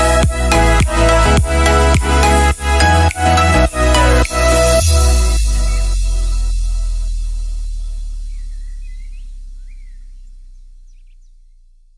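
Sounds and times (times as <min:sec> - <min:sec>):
electronic song bass note: 0:00.0 - 0:11.5
bird chirps: 0:04.8 - 0:11.8.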